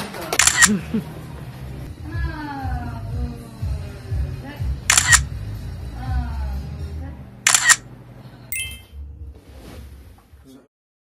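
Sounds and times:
camera shutter double click: 0:00.4 - 0:00.7, 0:04.9 - 0:05.2, 0:07.5 - 0:07.8
bright ringing chime: 0:08.5 - 0:09.0.

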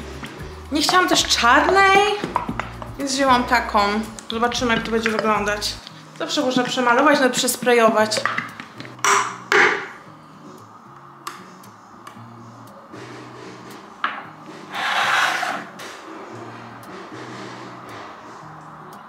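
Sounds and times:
background music: 0:00.0 - 0:19.0
clicks and knocks on paint tin: 0:08.2 - 0:09.9
short scraping rush: 0:14.7 - 0:15.8.

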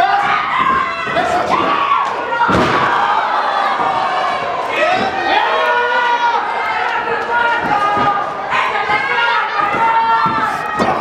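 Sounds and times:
spectators shouting: 0:00.0 - 0:11.0
wrestler slamming onto ring: 0:02.4 - 0:03.2.

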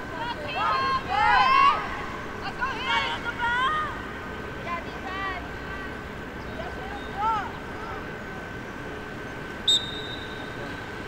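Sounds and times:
people shouting outdoors: 0:00.1 - 0:06.0.

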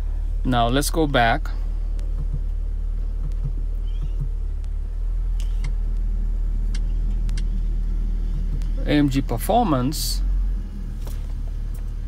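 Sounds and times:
car engine idling: 0:00.0 - 0:12.0
faint clicks of controls: 0:01.1 - 0:09.2, 0:10.8 - 0:12.0.

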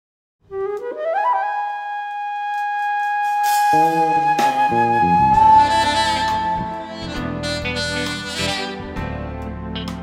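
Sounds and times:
solo flute: 0:00.5 - 0:09.1.

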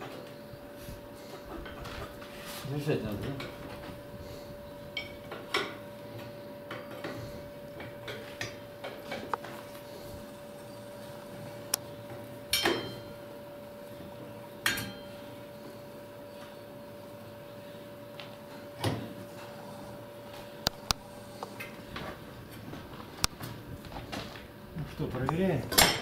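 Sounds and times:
faint steady hum: 0:00.0 - 0:26.0.

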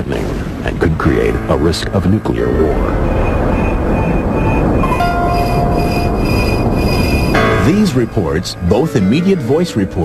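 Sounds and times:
faint high tones: 0:02.6 - 0:09.2.

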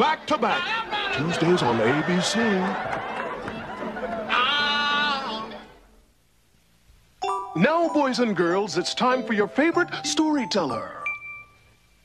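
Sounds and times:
piano music: 0:07.2 - 0:11.4.

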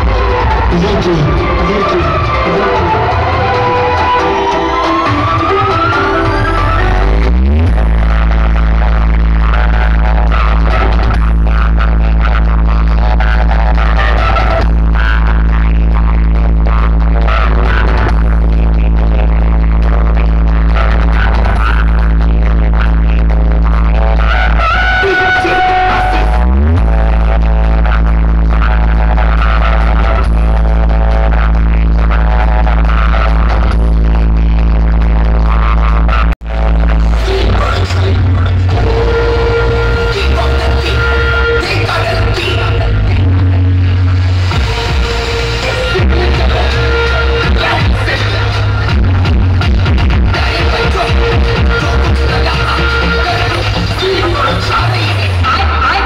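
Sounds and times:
rising sweep: 0:00.0 - 0:07.7
electronic dance music heavy bass: 0:00.0 - 0:56.0.

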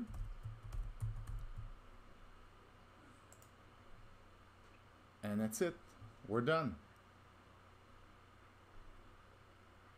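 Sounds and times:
keyboard and mouse clicks: 0:03.3 - 0:03.6.

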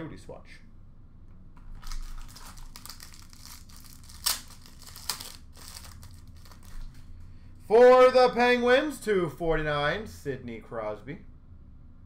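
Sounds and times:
card packaging crinkling: 0:01.7 - 0:07.0.

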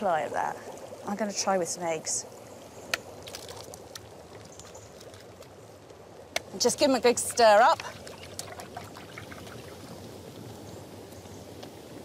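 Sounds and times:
brine boiling with watery hiss: 0:00.0 - 0:12.0.

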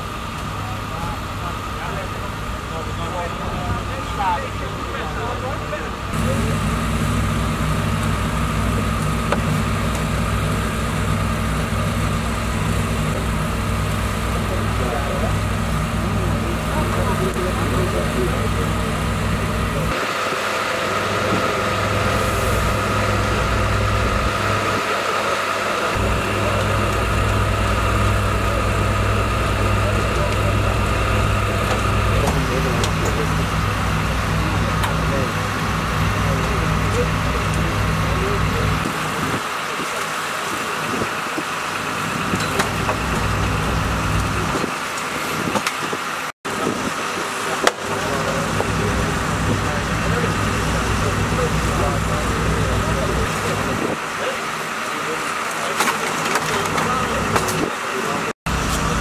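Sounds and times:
engines idling: 0:00.0 - 0:59.0
voices talking: 0:00.0 - 0:59.0.

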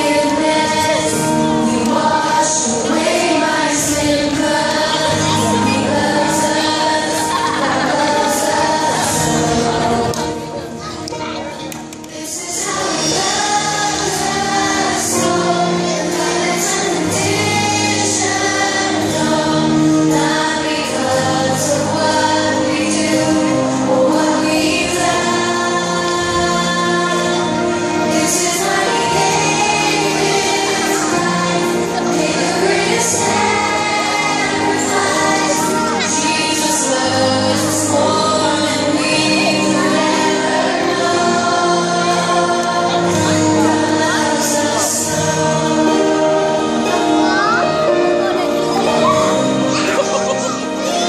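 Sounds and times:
children's choir singing: 0:00.0 - 0:51.0
instrumental music: 0:00.0 - 0:51.0.

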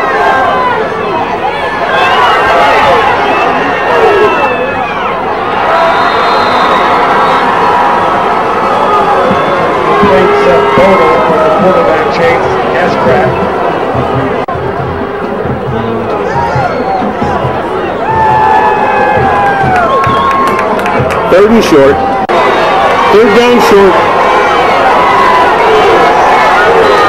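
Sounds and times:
stadium crowd shouting and cheering: 0:00.0 - 0:27.0.

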